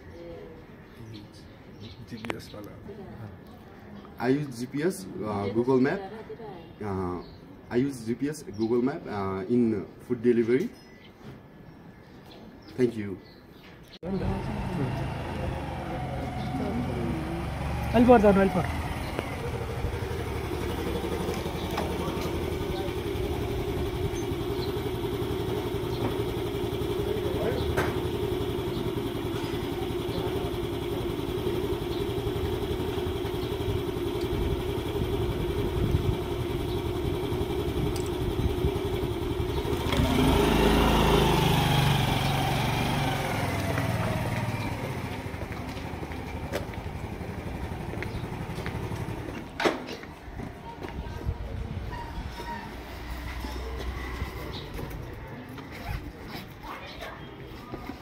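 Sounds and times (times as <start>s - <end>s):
motor scooter engine: 14.0s - 50.5s, 51.8s - 56.3s.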